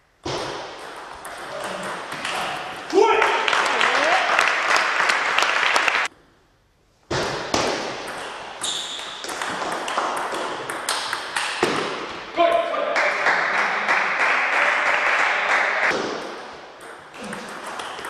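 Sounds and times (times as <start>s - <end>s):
table tennis ball on bats: 0.2s - 2.9s, 7.1s - 12.3s, 15.9s - 18.0s
loud voices: 12.3s - 15.9s.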